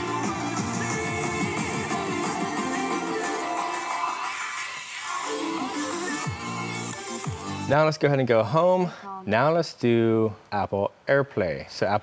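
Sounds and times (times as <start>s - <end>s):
music from a portable speaker: 0.0s - 7.7s.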